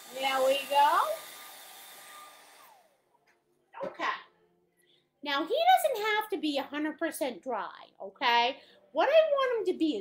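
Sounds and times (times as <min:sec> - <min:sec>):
hair dryer blowing: 0:00.0 - 0:03.0.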